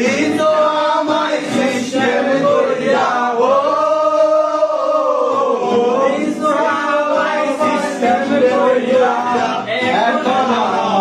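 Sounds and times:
group of men singing: 0.0 - 11.0.

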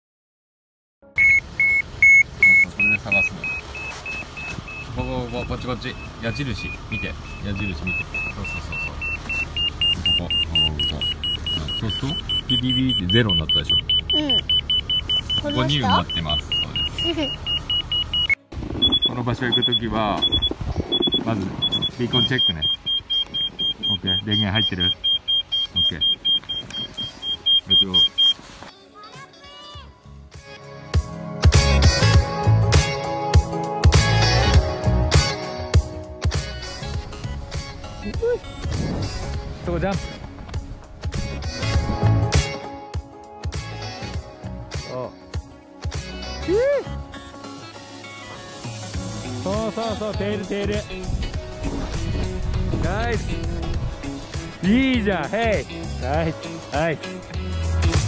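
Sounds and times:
transceiver high beeps: 1.2 - 28.4.

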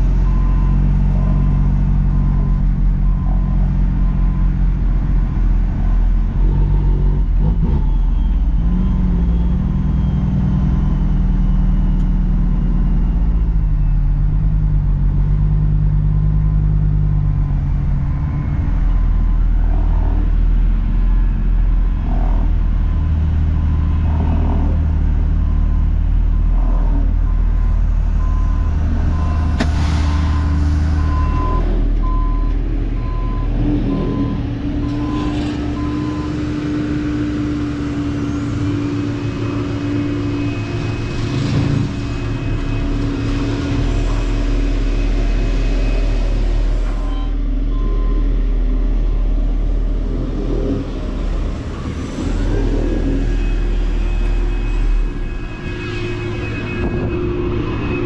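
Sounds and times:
heavy diesel engines running: 0.0 - 58.0
backup alarm beeping: 28.1 - 34.4, 53.3 - 58.0.

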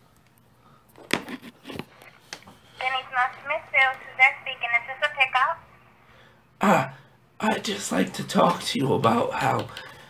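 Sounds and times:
person speaking over telephone: 2.8 - 5.7.

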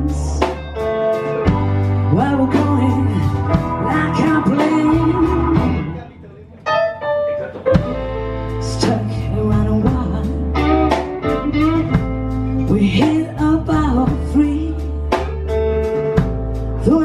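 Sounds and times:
electric guitar: 0.0 - 17.0
live blues band playing: 0.0 - 17.0.

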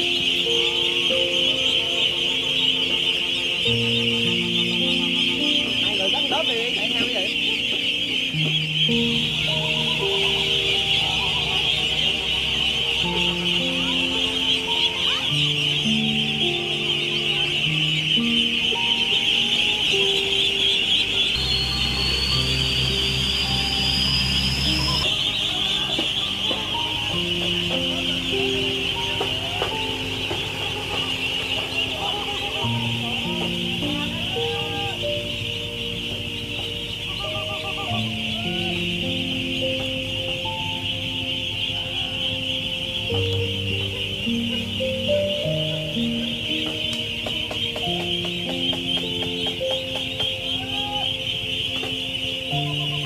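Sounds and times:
background music of held notes: 0.0 - 53.0
ducklings peeping: 0.0 - 53.0.

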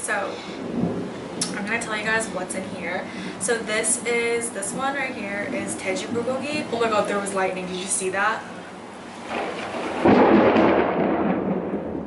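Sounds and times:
thunderclap: 0.0 - 7.2, 9.1 - 12.0.

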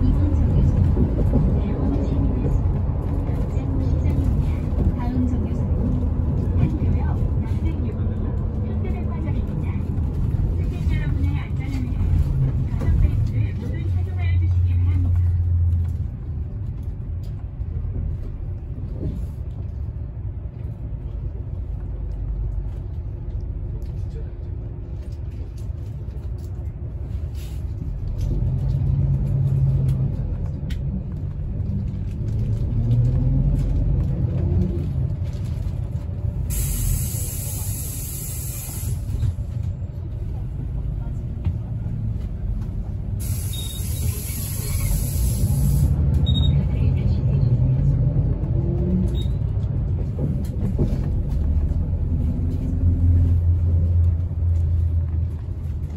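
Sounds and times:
bus engine and road rumble: 0.0 - 55.9
air brake hisses: 36.5 - 39.2, 43.2 - 45.9.

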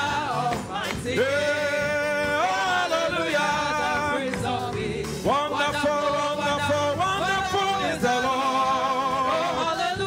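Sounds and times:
man singing through microphone: 0.0 - 10.0
voices singing along: 0.0 - 10.0.

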